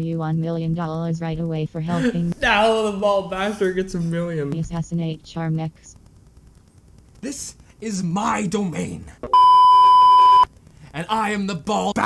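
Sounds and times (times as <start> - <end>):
person speaking: 0.0 - 5.8
censor bleep tone: 9.3 - 10.5.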